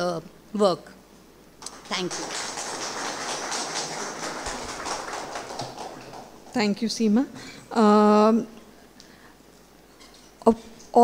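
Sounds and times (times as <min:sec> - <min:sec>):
audience applauding: 0:01.6 - 0:06.6.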